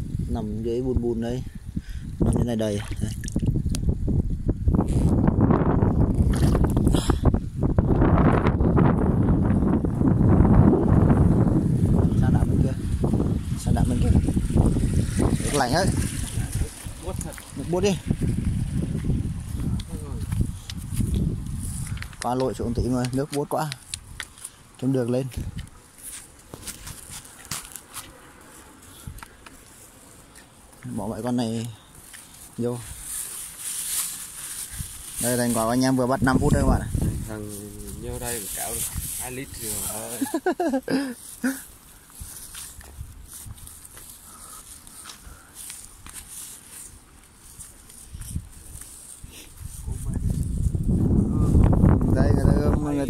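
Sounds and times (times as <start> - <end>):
wind buffeting microphone: 0.0 - 24.4, 25.2 - 25.8, 34.7 - 40.5, 42.1 - 45.0, 47.5 - 53.0
footsteps on muddy ground: 14.7 - 31.2, 39.7 - 50.9.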